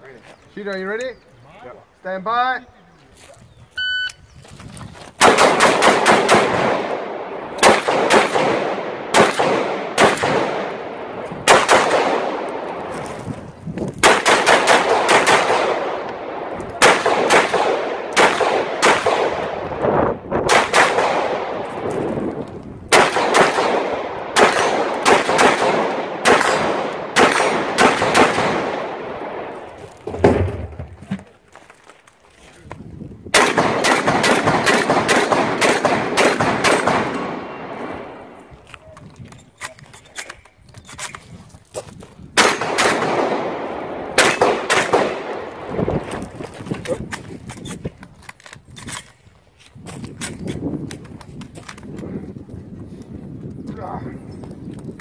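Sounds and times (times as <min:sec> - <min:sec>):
shot timer beep: 0:03.8 - 0:04.2
rifle fire echoing: 0:05.2 - 0:13.1, 0:14.0 - 0:19.8, 0:20.4 - 0:30.8, 0:33.3 - 0:38.4, 0:42.4 - 0:45.8
low thud: 0:30.0 - 0:31.3.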